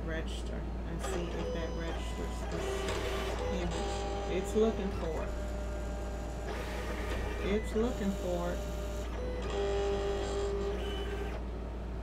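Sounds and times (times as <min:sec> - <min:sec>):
low mains hum: 0:00.0 - 0:12.0
cutting machine motors whining: 0:01.0 - 0:11.4.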